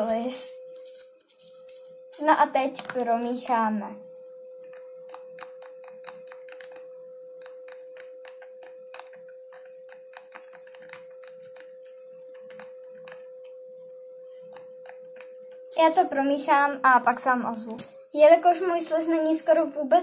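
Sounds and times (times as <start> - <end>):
toothpick stirring slime: 0.0 - 3.6, 4.6 - 16.4
faint steady hum: 0.0 - 20.0.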